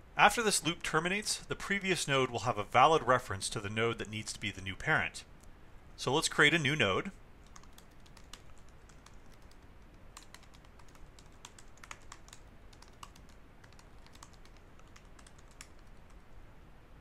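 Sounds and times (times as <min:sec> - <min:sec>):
computer keyboard typing: 0:07.4 - 0:16.2.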